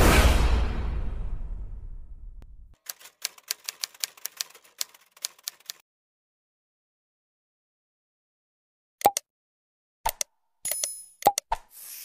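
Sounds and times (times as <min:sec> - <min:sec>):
typewriter keystroke clicks: 0:02.8 - 0:05.8.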